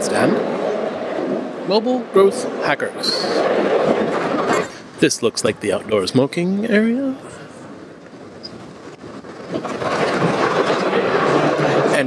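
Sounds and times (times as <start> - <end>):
crowded hall rushing noise: 0.0 - 5.7, 8.6 - 12.0.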